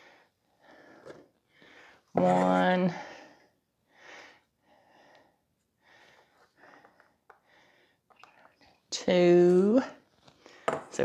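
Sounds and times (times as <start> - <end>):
quiet breaths: 0.0 - 2.2, 2.9 - 9.0, 9.9 - 11.0.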